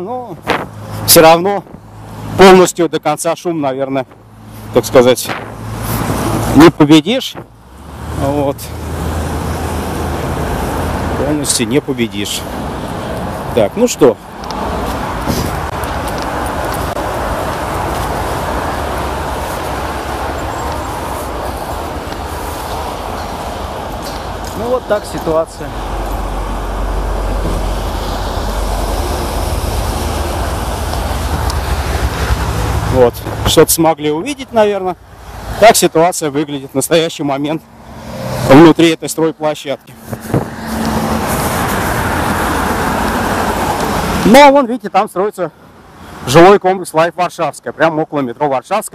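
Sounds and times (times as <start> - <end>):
heavy road traffic roar: 0.0 - 48.9
cars driving past close by: 3.5 - 44.3.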